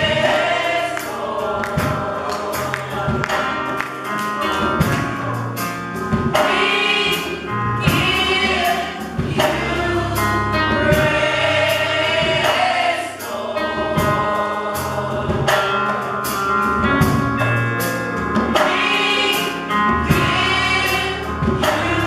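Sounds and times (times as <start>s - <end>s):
gospel choir singing in harmony: 0.0s - 22.0s
keyboard: 0.0s - 22.0s
steady drum beat: 0.0s - 22.0s.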